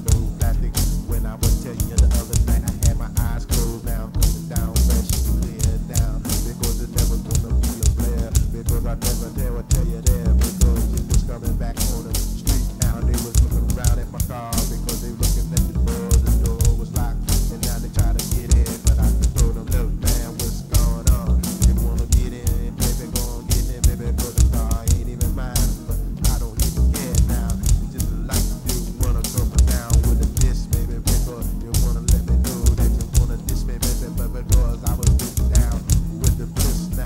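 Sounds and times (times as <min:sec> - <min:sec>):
bass and drums groove: 0:00.0 - 0:37.0.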